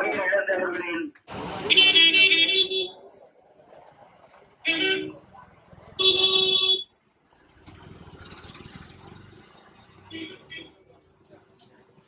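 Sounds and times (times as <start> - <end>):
street traffic noise: 0.0 - 12.0
vehicle horn honking: 6.0 - 6.9.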